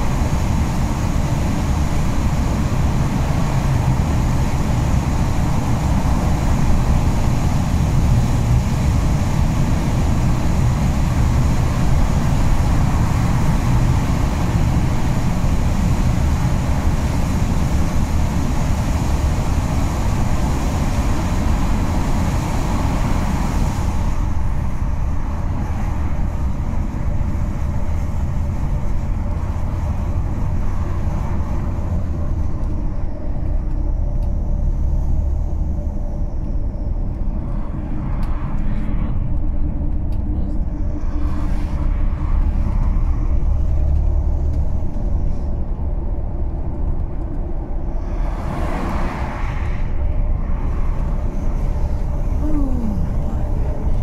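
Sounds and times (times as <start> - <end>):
engine and tyre rumble: 0.0 - 54.0
oncoming vehicles rushing past: 47.8 - 54.0.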